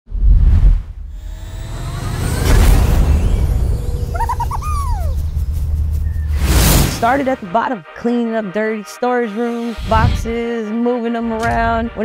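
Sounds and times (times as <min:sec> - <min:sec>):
deep low drone: 0:01.0 - 0:07.1
long falling glide: 0:01.1 - 0:07.1
cartoon creature chirps: 0:04.1 - 0:05.4.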